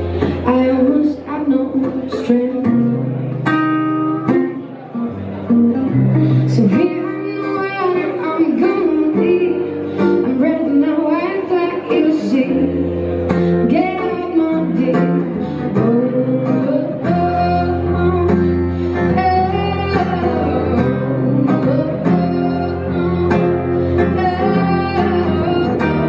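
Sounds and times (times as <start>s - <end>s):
acoustic guitar picked and strummed: 0.0s - 26.0s
woman singing: 0.2s - 3.1s, 6.4s - 26.0s.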